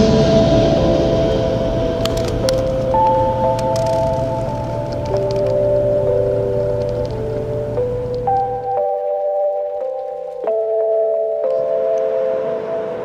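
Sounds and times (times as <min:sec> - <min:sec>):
slow held chords over drone: 0:00.0 - 0:13.0.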